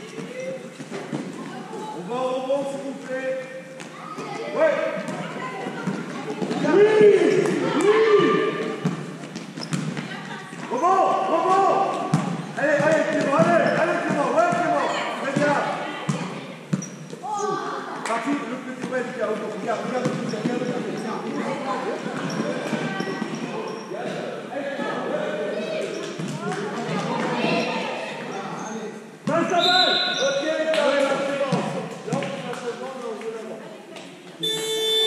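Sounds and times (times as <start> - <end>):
boys calling and shouting: 0.0 - 35.0
basketball bouncing on hall floor: 5.0 - 10.8, 11.9 - 17.4, 18.8 - 21.4, 22.0 - 23.5, 31.4 - 32.5.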